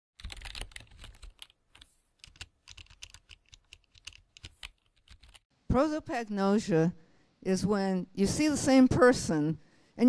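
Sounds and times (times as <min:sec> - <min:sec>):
keyboard typing: 0:00.2 - 0:05.4.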